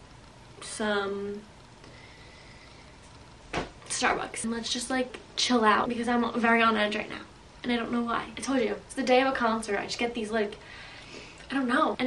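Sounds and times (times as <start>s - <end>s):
faint high hum: 0.0s - 12.0s.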